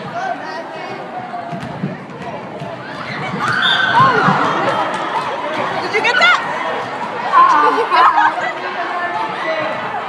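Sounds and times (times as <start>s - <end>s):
crowd chattering: 0.0s - 10.0s
basketball bouncing: 1.4s - 7.2s.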